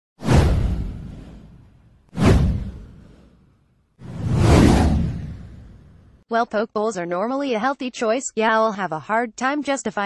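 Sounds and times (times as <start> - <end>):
whoosh with deep rumble and hiss: 4.1 - 6.2.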